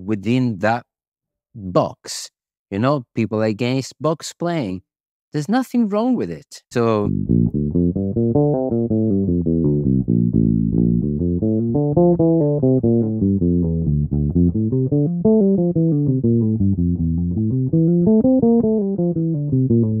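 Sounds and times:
electric bass played fingerstyle: 7.0 - 20.0.

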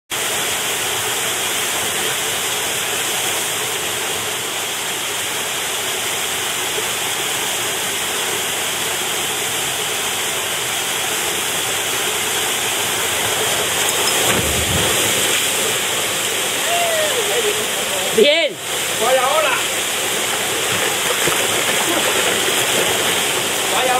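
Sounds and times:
waterfall rushing: 0.1 - 23.9
low surge of water: 8.8 - 23.9
person shouting: 16.6 - 17.6.

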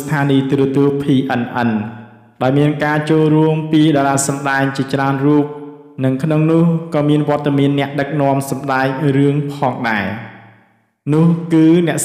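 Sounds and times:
man narrating: 0.0 - 10.2, 11.1 - 12.0.

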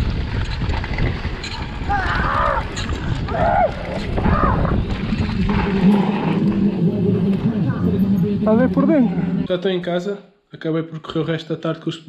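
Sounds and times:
rushing bike ride noise: 0.0 - 9.5
voices shouting: 1.9 - 4.8.

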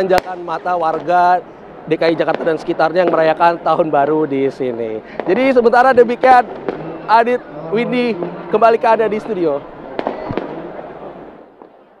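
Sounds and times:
firecracker bangs: 0.0 - 1.3, 2.2 - 3.4, 5.1 - 7.4, 8.1 - 12.0
crowd noise: 0.0 - 12.0.

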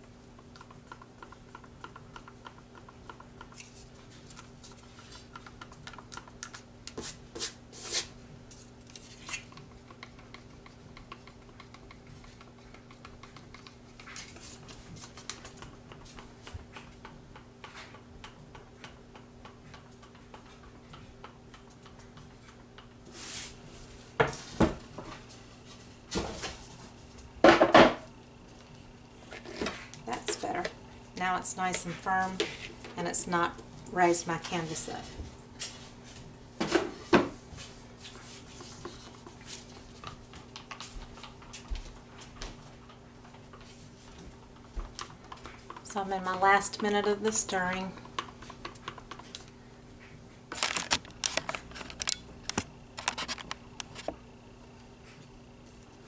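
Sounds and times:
low electrical hum: 0.0 - 56.0
stir stick scraping plastic cup: 6.1 - 9.6.

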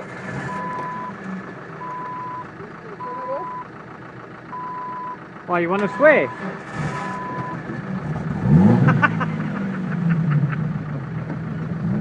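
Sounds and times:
vehicles: 0.0 - 12.0
vehicle warning beeps: 0.4 - 1.2, 1.8 - 3.8, 4.5 - 7.7.

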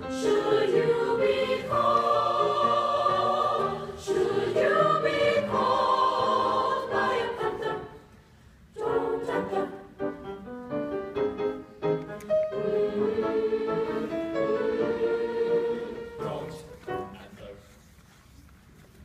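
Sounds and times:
choir singing sustained chords: 0.0 - 10.2, 12.4 - 16.4.

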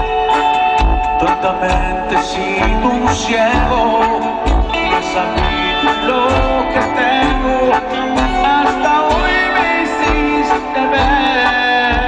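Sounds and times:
live band music over pa: 0.0 - 12.0.

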